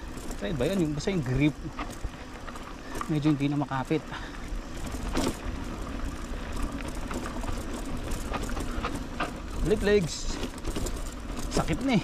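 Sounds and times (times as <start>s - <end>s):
bike rattling over bumps: 0.0s - 12.0s
bike tyres on loose dirt: 0.0s - 12.0s.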